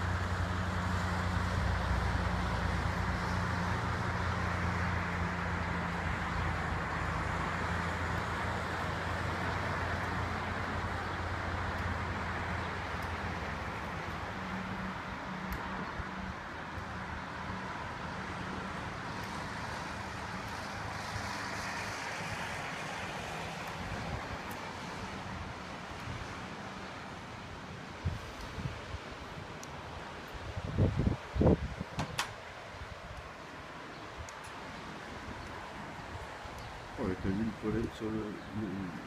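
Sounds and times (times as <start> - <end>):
outdoor background noise: 0.0 - 39.0.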